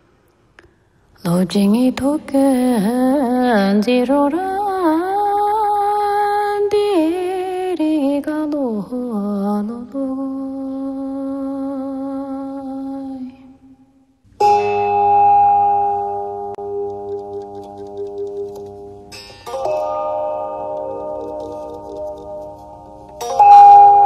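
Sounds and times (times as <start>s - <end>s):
bell-like chime ringing: 23.2s - 24.0s.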